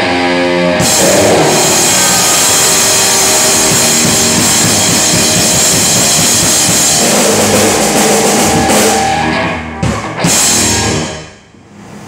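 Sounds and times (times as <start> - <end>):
electric guitar: 0.0 - 11.4
bass guitar: 0.0 - 12.0
drum kit with cymbals: 0.8 - 11.3.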